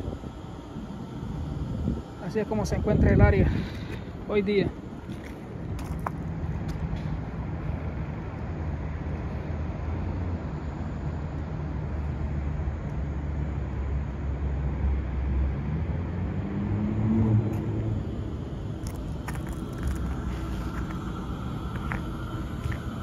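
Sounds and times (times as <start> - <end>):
constant low hum: 0.0 - 23.0
low city rumble: 0.0 - 23.0
vehicle passing below: 13.2 - 23.0.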